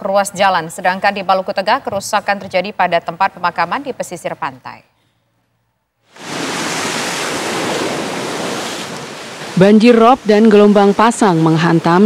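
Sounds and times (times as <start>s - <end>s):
seawater breaking on shore: 6.1s - 9.7s.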